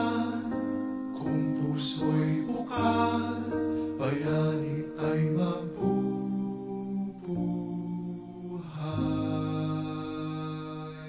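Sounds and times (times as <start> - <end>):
man singing slow song: 0.0 - 11.0.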